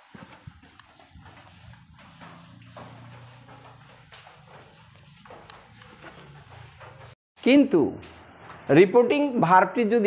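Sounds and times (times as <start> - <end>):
eraser wiping whiteboard: 0.0 - 7.2.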